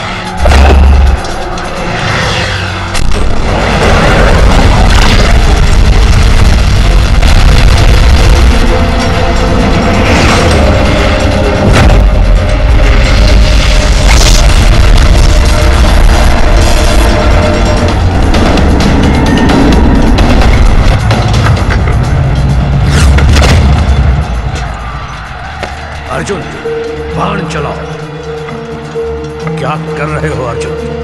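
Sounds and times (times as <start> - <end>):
orchestral film score music: 0.0 - 31.0
deep booming blasts: 0.4 - 1.3, 3.0 - 24.6.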